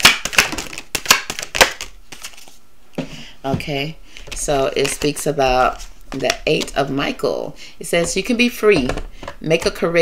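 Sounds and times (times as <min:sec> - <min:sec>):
cards being shuffled: 0:00.0 - 0:02.6, 0:04.2 - 0:07.0.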